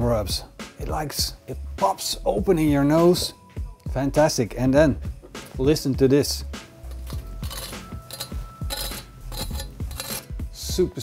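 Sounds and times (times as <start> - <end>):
knife scraping crunchy crackling: 6.9 - 10.3.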